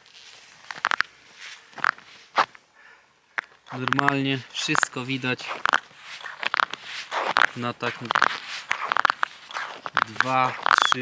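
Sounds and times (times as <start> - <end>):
boots crunching on ice: 0.0 - 2.6, 3.4 - 11.0.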